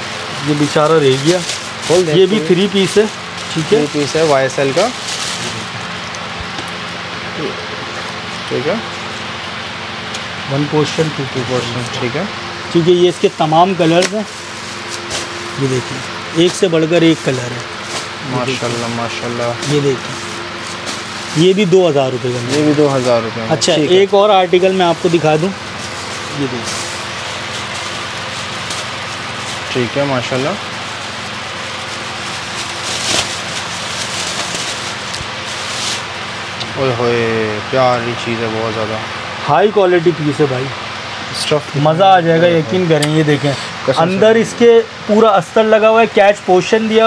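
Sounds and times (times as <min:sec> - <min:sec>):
plastic wrapping crinkling: 0:00.4 - 0:06.2, 0:13.0 - 0:36.3.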